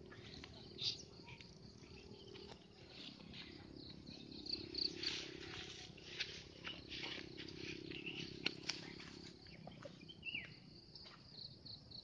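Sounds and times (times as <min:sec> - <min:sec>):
faint wild birdsong: 0:00.0 - 0:12.0
steady low hum: 0:00.0 - 0:12.0.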